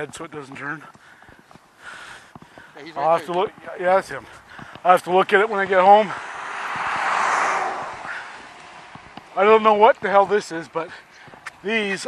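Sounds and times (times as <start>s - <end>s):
truck driving past: 5.8s - 9.2s.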